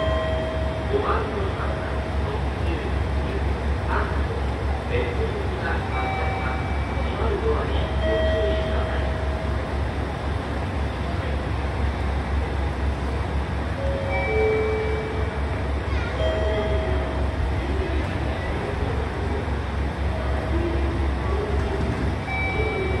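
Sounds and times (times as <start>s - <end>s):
distant voices: 0.0s - 23.0s.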